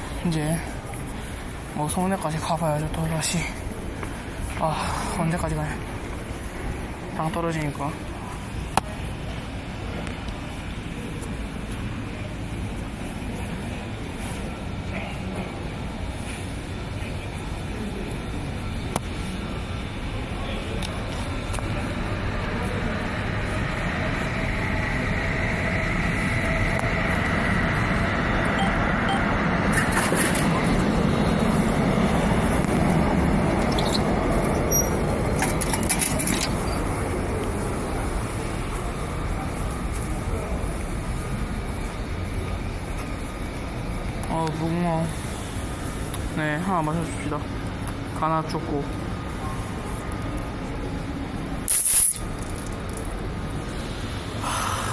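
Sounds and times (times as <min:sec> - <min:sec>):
electric train passing: 0:00.0 - 0:51.7, 0:52.6 - 0:54.9.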